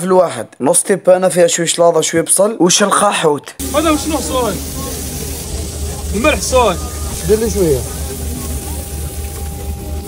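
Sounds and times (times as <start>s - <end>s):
low rumble: 3.6s - 10.0s
steady hiss: 3.6s - 10.0s.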